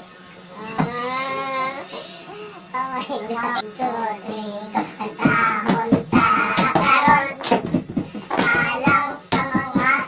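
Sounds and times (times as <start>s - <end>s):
high-pitched young voices: 0.5s - 10.0s.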